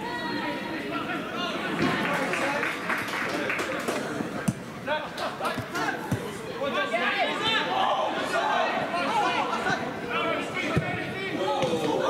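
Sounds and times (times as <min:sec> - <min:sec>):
players and crowd shouting: 0:04.8 - 0:12.0.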